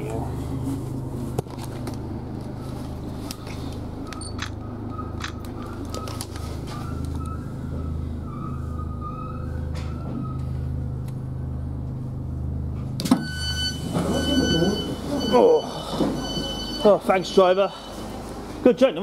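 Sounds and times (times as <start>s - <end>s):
high beeping door tone: 13.0s - 18.3s.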